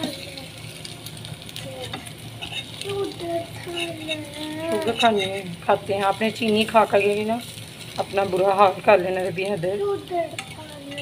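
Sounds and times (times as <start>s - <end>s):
food sizzling in oil: 0.0s - 11.0s
spatula stirring in pan: 0.0s - 11.0s.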